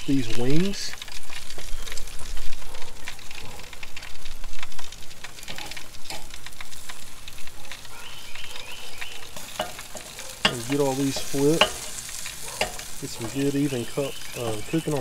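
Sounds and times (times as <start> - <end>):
chicken wings sizzling on grill: 0.0 - 15.0
fat popping on hot coals: 0.0 - 15.0
metal tongs clicking on grate: 9.4 - 13.6.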